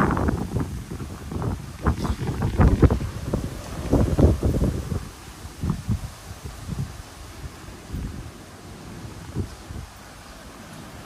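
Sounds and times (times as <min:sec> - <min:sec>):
storm wind buffeting microphone: 0:00.0 - 0:11.0.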